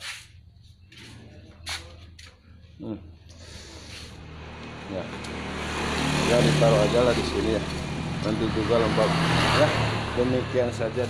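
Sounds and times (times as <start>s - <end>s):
tyres on road: 0.0s - 11.0s
vehicle engine approaching: 0.8s - 11.0s.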